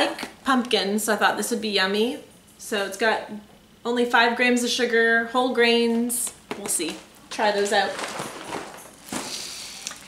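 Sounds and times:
packaging rustling: 6.8 - 10.0.

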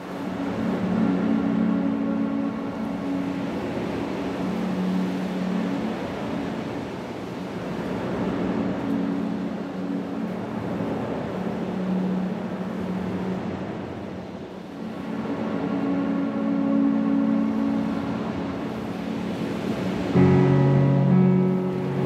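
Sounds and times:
low drone of held tones: 0.0 - 22.0
steady wash of noise: 0.0 - 22.0.

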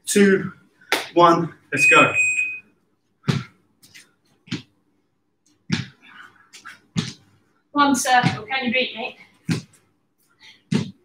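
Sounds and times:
feet thudding on gym mats: 3.2 - 4.8, 5.6 - 7.4, 8.1 - 8.7, 9.4 - 9.8, 10.6 - 11.0.

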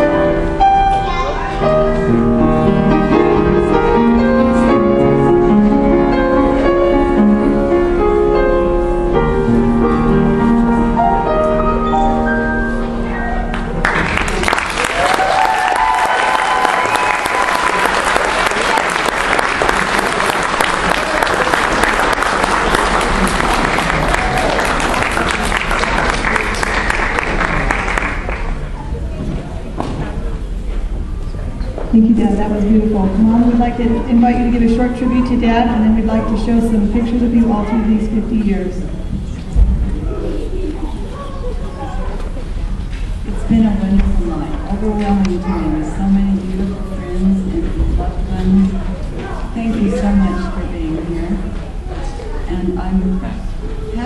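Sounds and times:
music: 0.0 - 14.4
audience applause: 13.5 - 29.1
murmured speech: 32.0 - 54.0
voices from crowd: 34.2 - 54.0.

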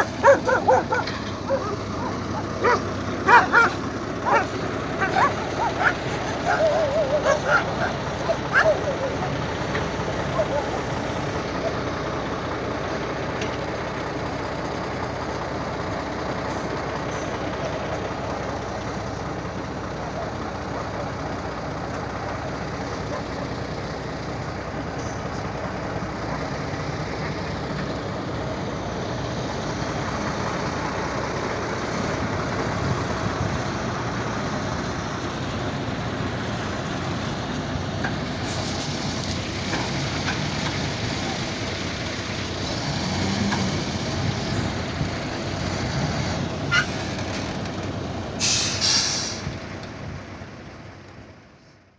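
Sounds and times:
diesel truck engine running: 0.0 - 51.9.

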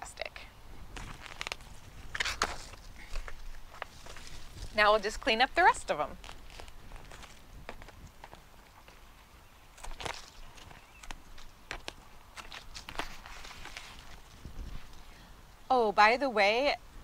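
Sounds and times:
leaves rustling: 0.4 - 17.0.

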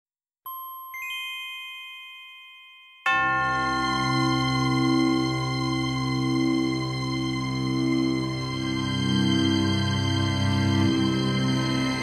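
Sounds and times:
bell-like chime tones: 0.5 - 8.4.

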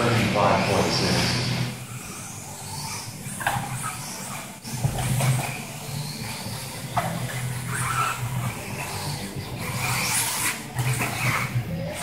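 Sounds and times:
electric motor whining: 0.0 - 12.0
steady low hum: 0.0 - 12.0.

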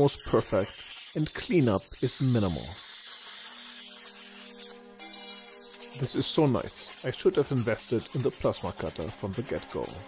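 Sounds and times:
plasma cutter hissing: 0.0 - 10.0.

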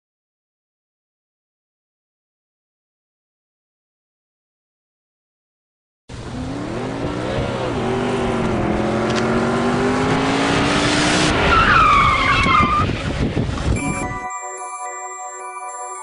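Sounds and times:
motorbike engines revving: 6.1 - 13.8.

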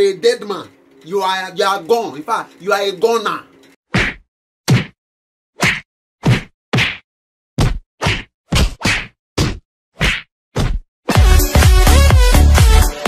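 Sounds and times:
sharp whacks: 3.9 - 5.0, 5.6 - 7.0, 7.6 - 10.8.

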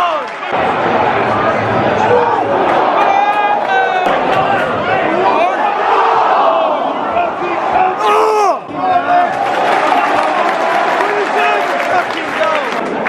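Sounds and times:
football crowd shouting: 0.0 - 13.0.

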